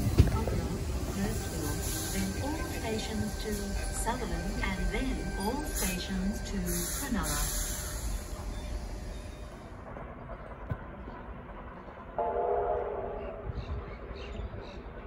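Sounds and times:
electric train rumbling: 0.0 - 15.0
train horn: 12.2 - 13.4.

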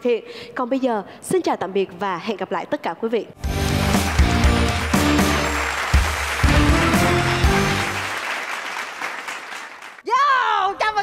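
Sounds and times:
closing music: 3.4 - 8.3
audience applauding: 3.6 - 10.0.

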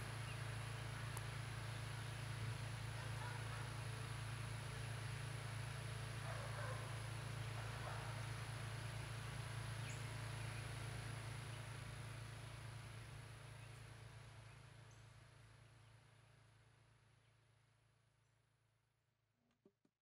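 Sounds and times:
steady low hum: 0.0 - 17.6.

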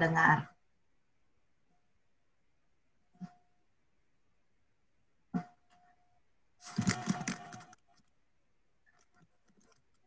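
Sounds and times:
crackly garbled noise: 6.6 - 8.1.

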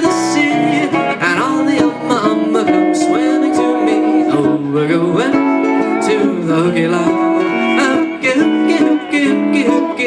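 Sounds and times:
pedal steel guitar sustained notes: 0.0 - 10.0.

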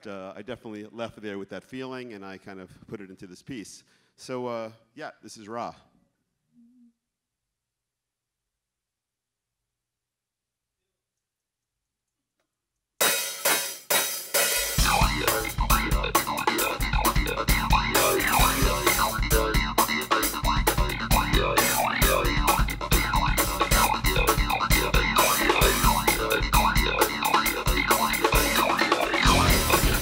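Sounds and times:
drum kit groove: 13.0 - 30.0
keyboard synth lines: 14.8 - 30.0.

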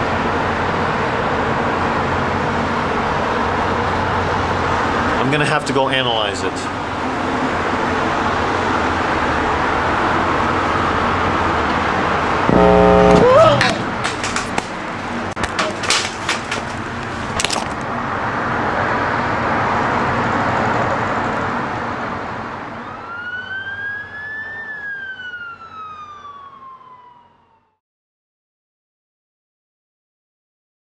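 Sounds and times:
city traffic noise: 0.0 - 27.7
siren-like wail: 12.5 - 13.7, 22.7 - 27.8
loud horn blast: 12.5 - 13.9
clicks: 12.5 - 14.7.

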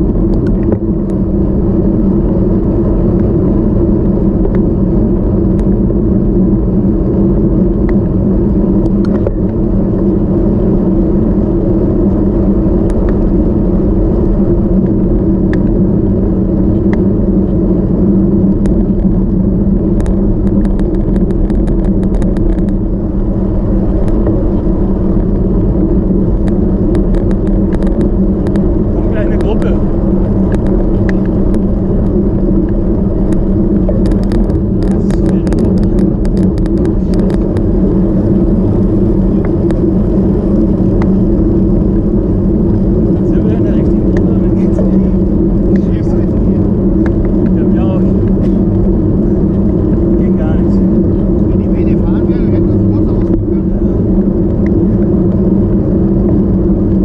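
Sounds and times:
bike tyre noise on asphalt: 0.0 - 57.0
wind on microphone: 0.0 - 57.0.

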